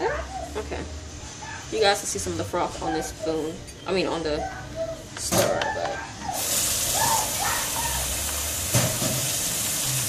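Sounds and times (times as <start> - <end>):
water running from a tap: 6.4 - 10.0.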